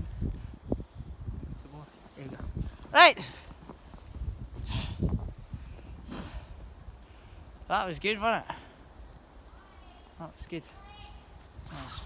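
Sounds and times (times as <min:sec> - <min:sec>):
wind on microphone: 0:00.0 - 0:02.9, 0:03.6 - 0:07.4.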